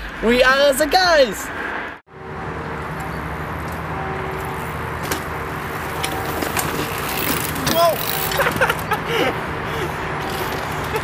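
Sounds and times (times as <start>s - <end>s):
bike crashing onto dirt: 5.0s - 8.9s
person yelling: 7.6s - 8.1s.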